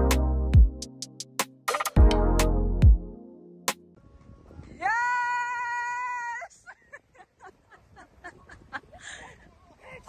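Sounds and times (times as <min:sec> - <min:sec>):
woman screaming: 0:04.8 - 0:06.5.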